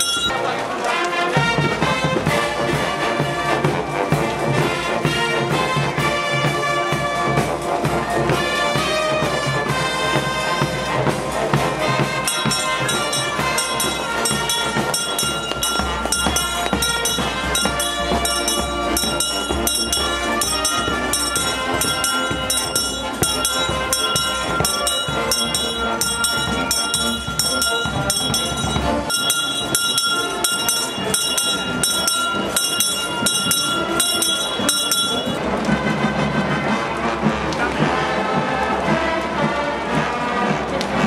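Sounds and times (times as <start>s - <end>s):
brass band playing: 0.0s - 41.0s.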